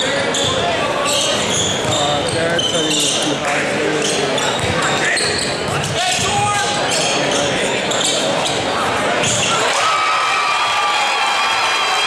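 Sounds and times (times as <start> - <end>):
sneaker squeaks on court floor: 0.0 - 9.6
crowd chatter: 0.0 - 12.0.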